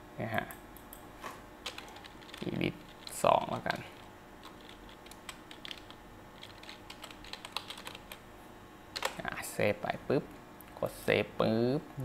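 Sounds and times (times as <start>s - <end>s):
computer keyboard typing: 1.6s - 8.2s, 9.0s - 9.2s.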